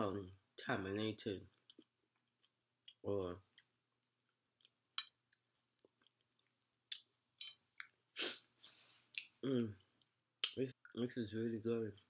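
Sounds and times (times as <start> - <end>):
sharp burst of breath: 8.2 - 8.9.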